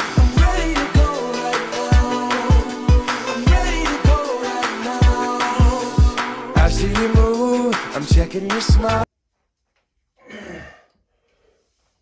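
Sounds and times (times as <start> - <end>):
man exhaling hard: 10.2 - 11.0
faint breath: 10.4 - 12.0.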